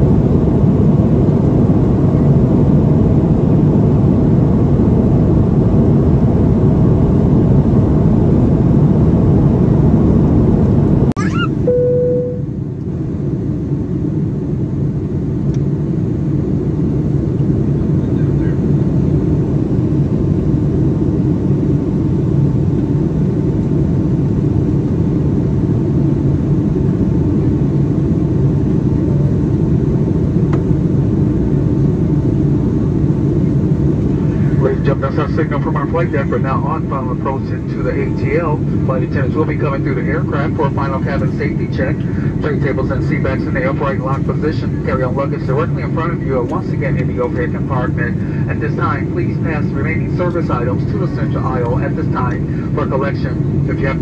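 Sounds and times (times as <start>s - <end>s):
airplane cabin drone: 0.0s - 54.0s
short cabin tone: 11.2s - 12.7s.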